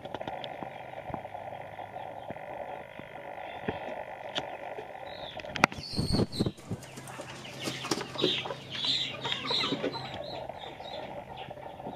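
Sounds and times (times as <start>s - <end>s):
chickens clucking: 0.0s - 11.9s.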